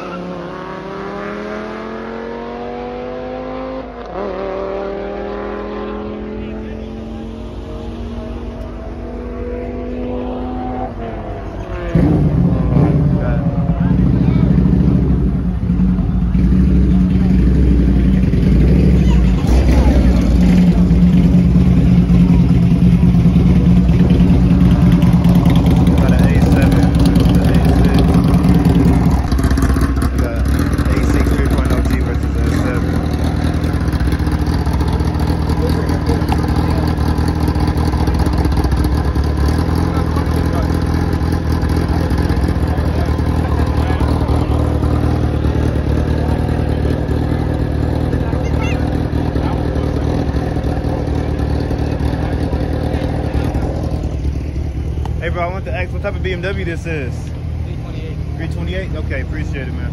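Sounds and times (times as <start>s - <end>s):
car engines revving: 0.0s - 59.9s
crowd chatter: 0.0s - 59.9s.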